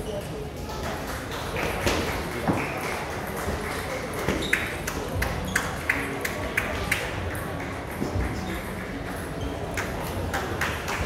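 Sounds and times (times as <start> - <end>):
murmur of busy hall: 0.0 - 11.0.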